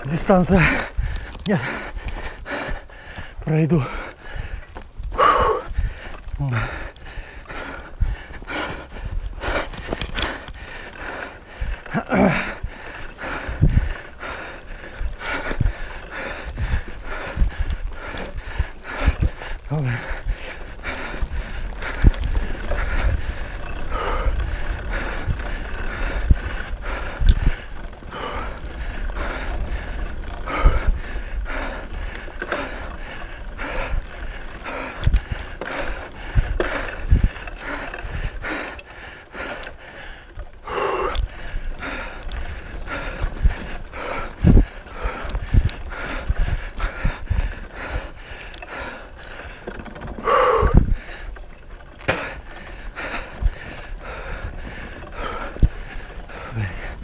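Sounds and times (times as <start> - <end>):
bike frame rattling and knocking: 0.0 - 57.0.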